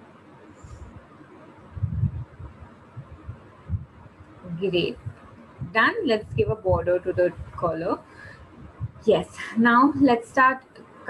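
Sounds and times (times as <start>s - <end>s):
faint hiss: 0.0s - 11.0s
dull low thumps of pencil: 8.6s - 9.0s.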